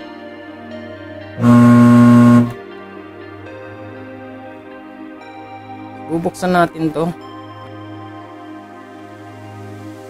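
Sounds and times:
faint steady hum: 1.4s - 2.6s
microwave loud buzzing hum: 1.4s - 2.6s.

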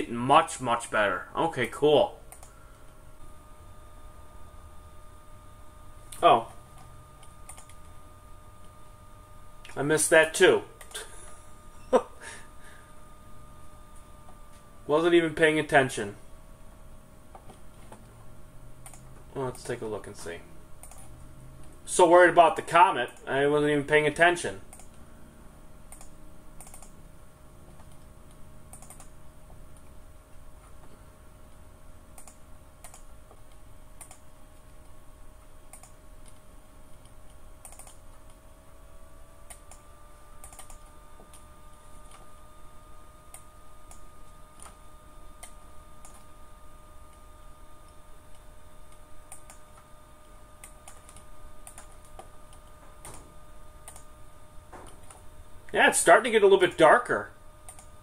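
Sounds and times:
faint steady hum: 0.0s - 58.0s
mouse and keyboard clicks: 25.9s - 26.9s.

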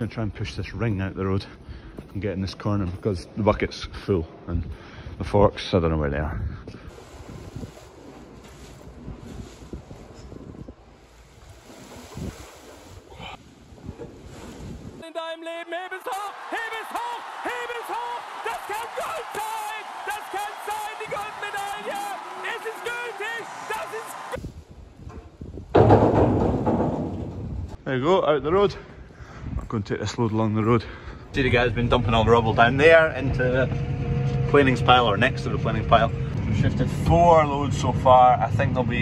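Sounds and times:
rustling in straw: 6.9s - 15.0s
crowd cheering: 15.4s - 24.4s.

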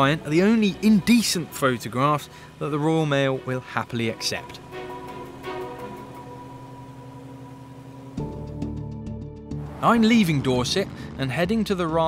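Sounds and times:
light aircraft engine droning: 0.0s - 8.9s, 9.5s - 12.0s.

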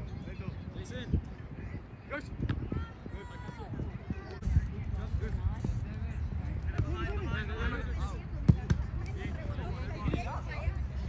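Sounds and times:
soccer ball kick thuds: 8.4s - 8.9s.

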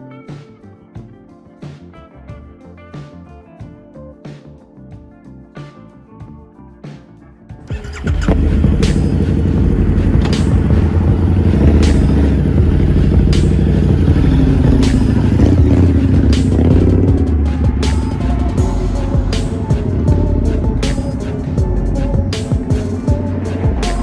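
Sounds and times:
background music with steady beat: 0.0s - 24.0s
motorcycle engine revving past: 7.7s - 18.6s.

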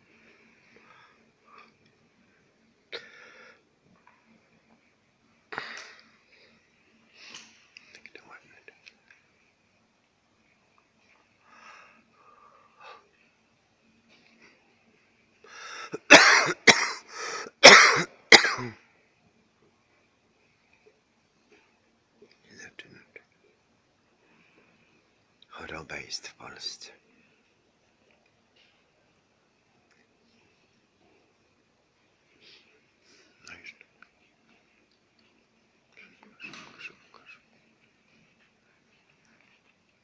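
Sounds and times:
faint whispering: 6.1s - 9.5s, 11.0s - 13.4s, 20.0s - 27.5s, 32.0s - 39.8s
person coughing hard: 15.9s - 18.8s.

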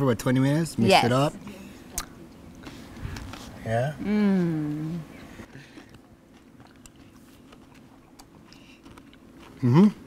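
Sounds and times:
low steady hum: 0.0s - 10.0s
chewing mouth clicks and smacks: 5.7s - 9.6s.

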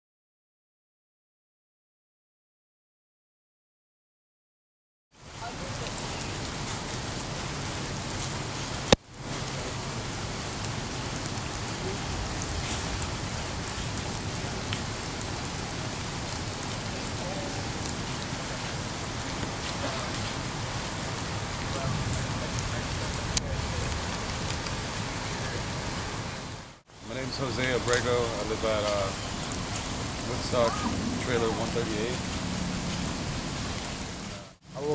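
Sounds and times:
steady rain falling: 5.1s - 34.9s.

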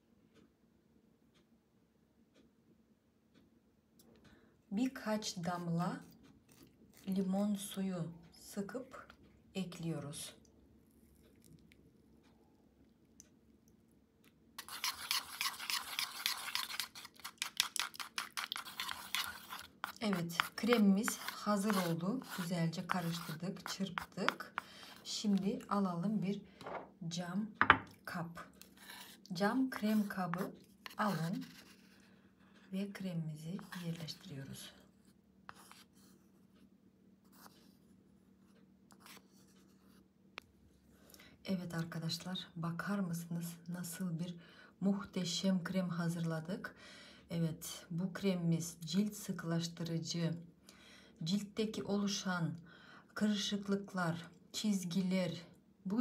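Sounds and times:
low steady hum: 0.0s - 56.0s
whisk scraping in a bowl: 14.6s - 25.7s, 28.6s - 31.9s.

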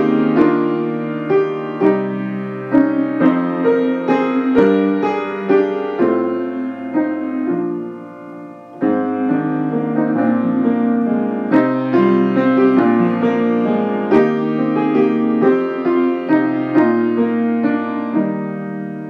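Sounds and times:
slow gentle keyboard music: 0.0s - 19.0s.

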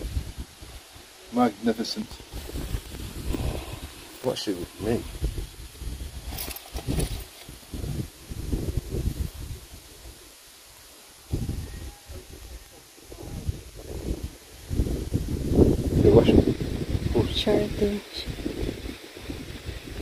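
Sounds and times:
wind buffeting microphone: 0.0s - 10.2s, 11.3s - 20.0s.

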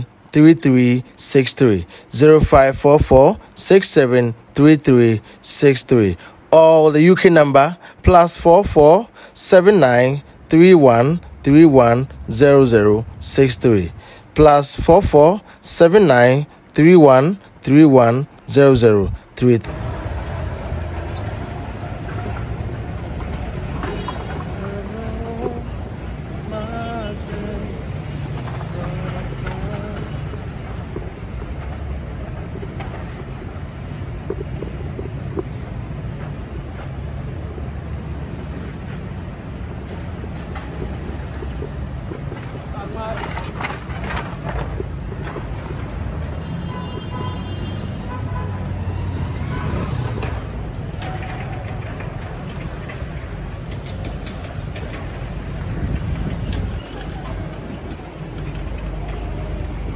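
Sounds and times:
road traffic rumble: 0.0s - 59.9s
faint voices of passers-by: 55.9s - 59.9s.

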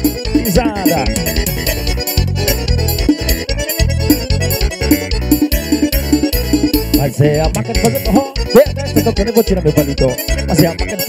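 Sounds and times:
heavy bass line: 0.0s - 11.0s
keyboard forro music: 0.0s - 11.0s.

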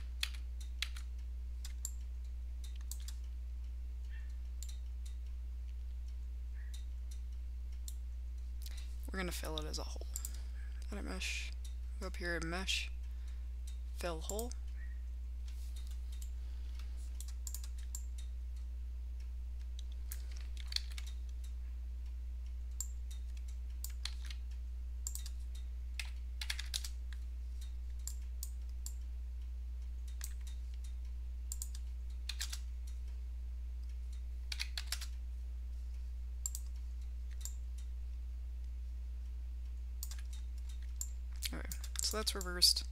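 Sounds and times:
keyboard and mouse clicks: 0.0s - 3.4s, 4.1s - 8.0s, 15.4s - 18.3s, 19.6s - 21.6s, 22.7s - 29.0s, 30.0s - 33.2s, 33.8s - 35.2s, 36.4s - 37.9s, 39.7s - 42.6s
low electrical hum: 0.0s - 42.9s.

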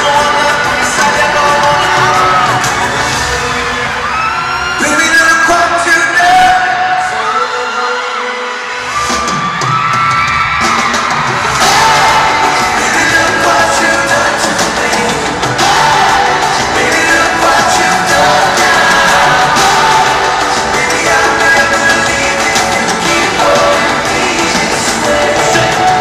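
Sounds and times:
man singing long held notes: 0.0s - 3.0s, 11.6s - 26.0s
live pop band: 0.0s - 26.0s.

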